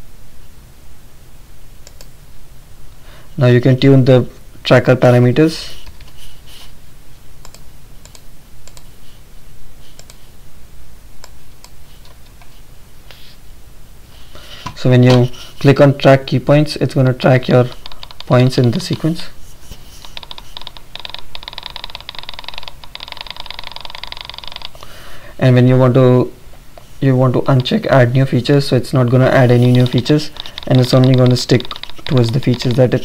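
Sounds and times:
speech: 3.4 - 5.8, 14.8 - 19.4, 25.4 - 26.4, 27.0 - 33.0
keyboard keystrokes: 17.6 - 19.1, 20.0 - 24.8, 29.0 - 33.0.

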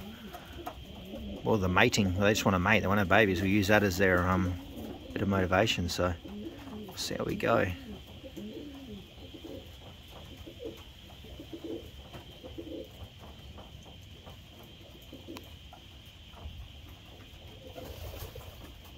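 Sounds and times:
pigeons cooing: 0.0 - 18.9.

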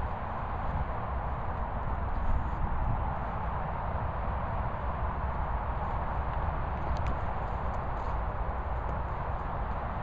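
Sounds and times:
faint light clicks: 6.3 - 7.8.

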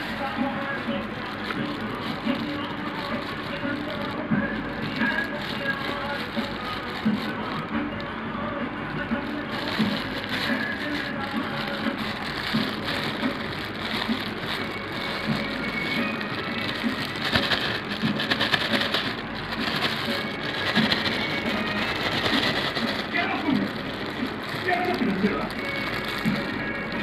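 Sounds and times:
plastic bag crinkling: 0.0 - 27.0.

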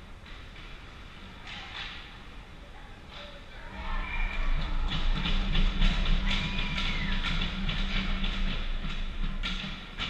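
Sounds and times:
music: 3.6 - 10.0.

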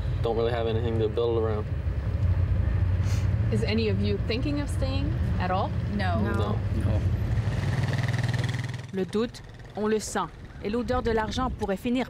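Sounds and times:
people speaking: 3.5 - 7.0, 8.9 - 12.0.

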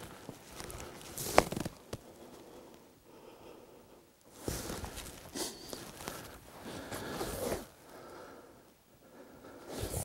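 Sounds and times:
clothing and gear rustling: 0.0 - 2.4, 4.4 - 7.8.

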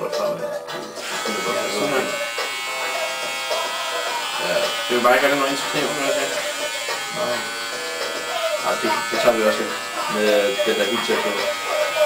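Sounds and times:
electric hair clipper buzzing: 1.0 - 12.0.

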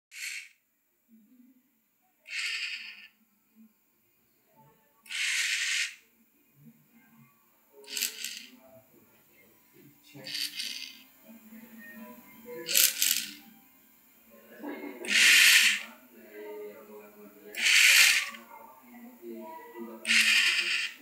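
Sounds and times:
small motors whirring: 0.1 - 0.5, 2.3 - 3.1, 5.1 - 6.0, 7.9 - 8.5, 10.3 - 11.0, 12.7 - 13.4, 15.1 - 15.9, 17.6 - 18.4, 20.0 - 21.0.

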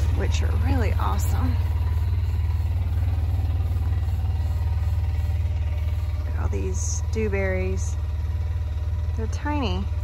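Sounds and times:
small vehicle engine running: 0.0 - 10.0.

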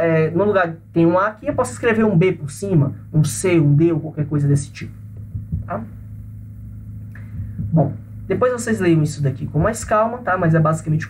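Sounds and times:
man speaking: 0.0 - 5.0, 5.6 - 6.0, 7.7 - 11.0
low background hum: 0.0 - 11.0.

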